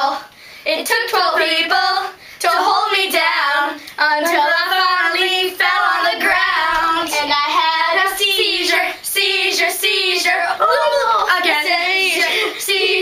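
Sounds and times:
girls singing: 0.0s - 13.0s.

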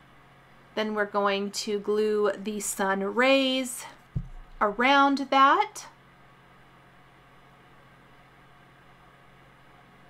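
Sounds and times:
faint steady hum and hiss: 0.0s - 10.0s.

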